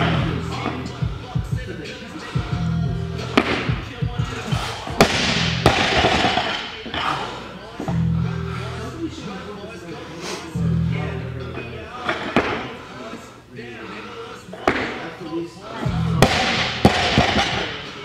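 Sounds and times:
music with heavy bass: 0:00.0 - 0:01.7, 0:02.4 - 0:05.8, 0:10.6 - 0:11.5.

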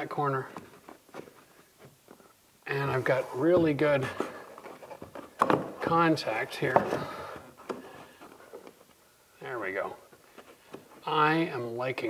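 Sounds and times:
molding clicking and tapping on wood: 0:00.4 - 0:02.3, 0:03.5 - 0:09.0, 0:09.8 - 0:11.4.

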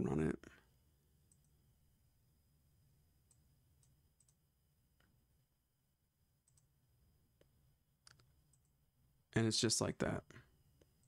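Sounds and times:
faint room hum: 0:00.0 - 0:11.0
computer mouse clicks: 0:01.3 - 0:01.6, 0:03.3 - 0:04.4, 0:06.4 - 0:06.7, 0:07.4 - 0:08.8.

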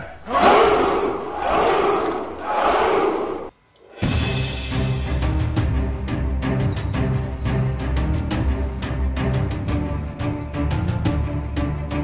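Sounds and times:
crowd of men shouting: 0:00.0 - 0:03.5.

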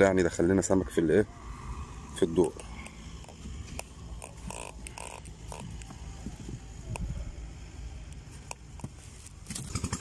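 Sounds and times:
low steady rumble: 0:00.0 - 0:10.0
short grating sounds: 0:02.4 - 0:06.0
handling clicks and rustles: 0:02.4 - 0:07.2, 0:08.1 - 0:10.0.

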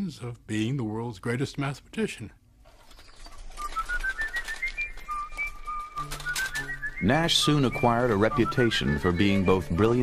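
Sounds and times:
person whistling a tune: 0:03.6 - 0:10.0
low sustained music tones: 0:04.9 - 0:10.0.

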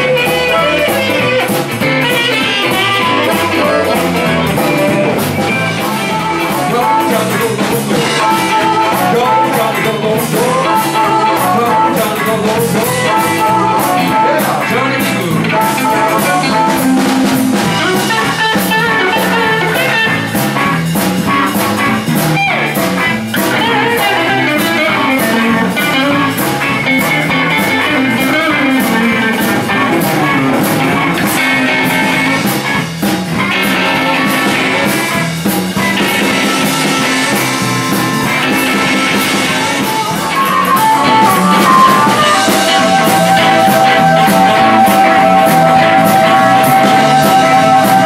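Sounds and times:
harmonica: 0:00.0 - 0:22.1, 0:33.4 - 0:48.0
electric guitars: 0:00.0 - 0:48.0
steady drum beat: 0:00.0 - 0:48.0.

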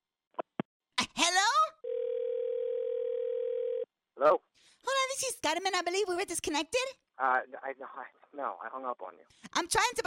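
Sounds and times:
telephone dial tone: 0:01.8 - 0:03.9.

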